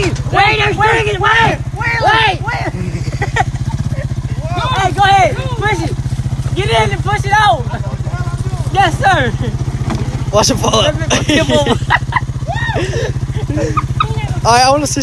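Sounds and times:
engine idling: 0.0s - 15.0s
voices talking: 0.0s - 15.0s.

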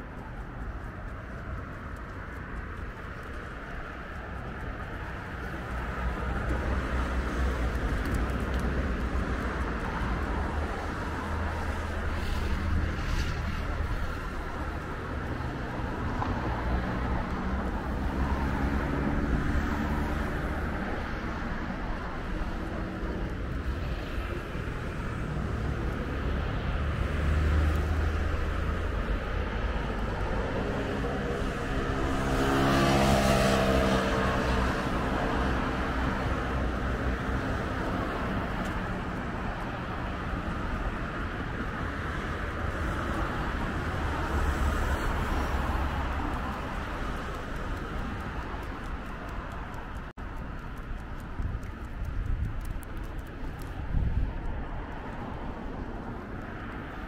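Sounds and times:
road traffic: 0.0s - 57.0s
vehicle passing: 0.0s - 57.0s.

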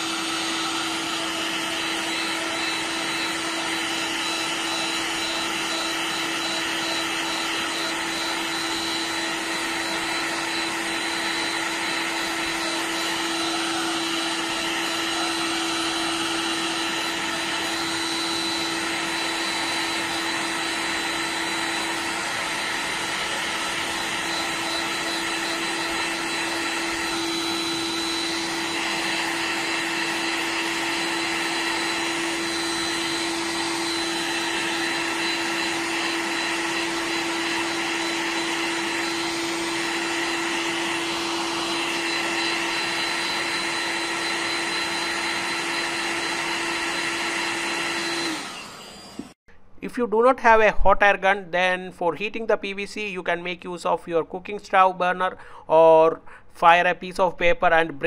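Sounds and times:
hot air gun blowing air: 0.0s - 49.4s.

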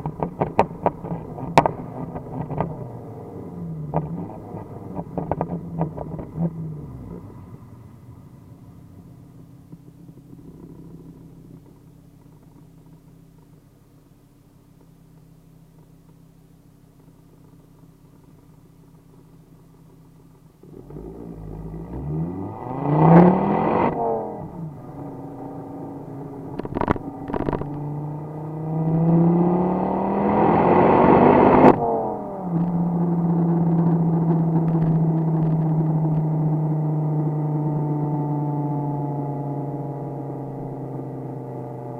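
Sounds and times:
exhaust pops: 0.0s - 3.0s, 3.7s - 7.4s, 23.7s - 28.0s, 31.6s - 36.4s
car engine revving: 0.0s - 12.6s, 20.4s - 41.9s.

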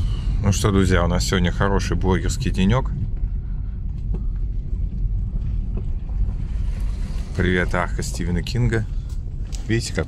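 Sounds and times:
car rolling over gravel: 4.1s - 10.0s.

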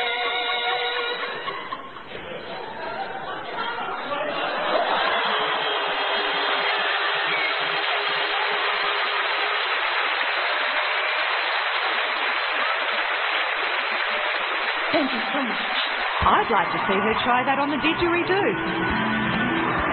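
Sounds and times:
audience applauding: 0.0s - 19.9s.

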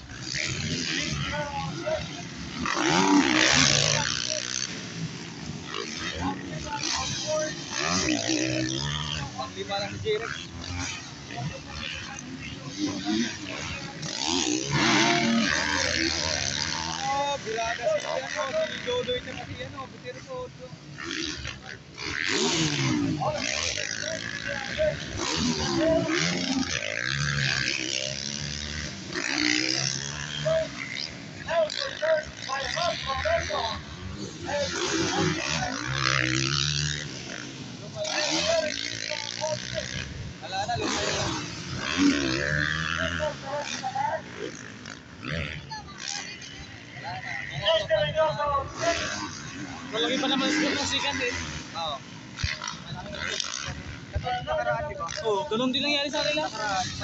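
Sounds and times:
dirt bike engines revving: 0.0s - 57.0s
people's voices: 0.0s - 57.0s.

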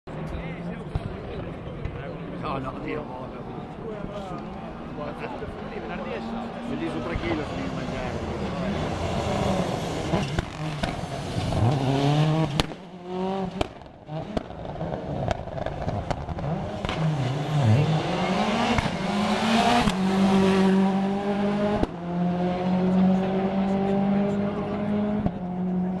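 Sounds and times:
rally car engine at racing revs: 3.4s - 26.0s.

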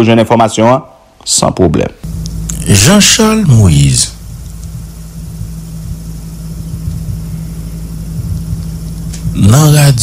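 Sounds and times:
steady low hum: 1.8s - 10.0s
faint rumble: 2.0s - 10.0s.

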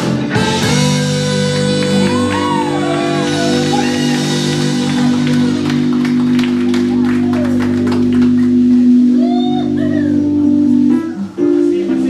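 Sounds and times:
drum and cymbal hits: 0.0s - 7.0s
held chord over bass: 0.0s - 12.0s.

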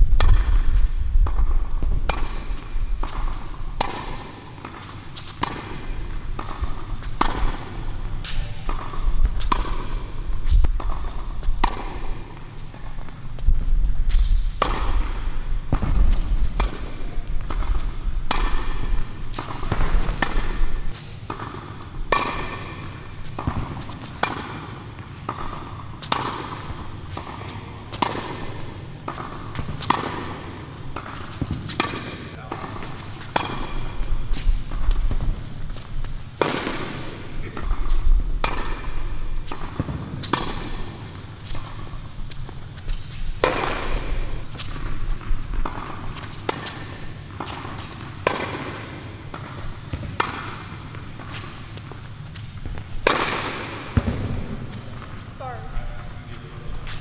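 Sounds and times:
tennis balls struck and bouncing: 0.0s - 55.7s.

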